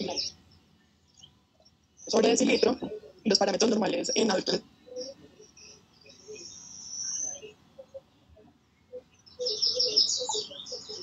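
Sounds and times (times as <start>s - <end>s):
distorted voice over video call: 0.0s - 0.3s, 2.1s - 4.6s.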